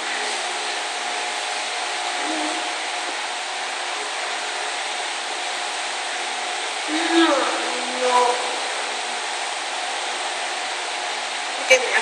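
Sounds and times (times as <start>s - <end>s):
fan rushing with faint hum: 0.0s - 12.0s.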